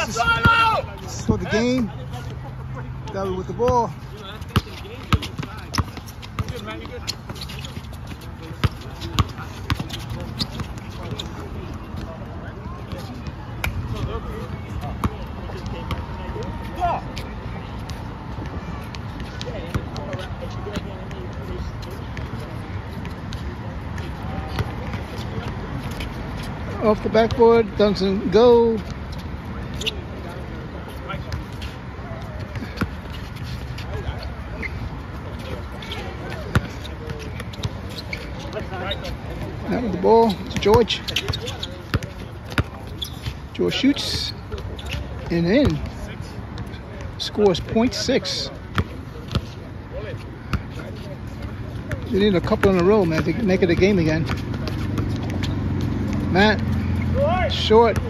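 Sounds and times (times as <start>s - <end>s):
faint voices: 0.0s - 58.0s
basketball bouncing on court: 3.6s - 12.2s, 14.8s - 16.0s, 33.8s - 47.9s, 48.7s - 49.5s, 50.4s - 57.1s
basketball bouncing on hard court: 4.5s - 7.5s, 8.6s - 11.3s, 36.2s - 38.8s, 40.2s - 43.3s.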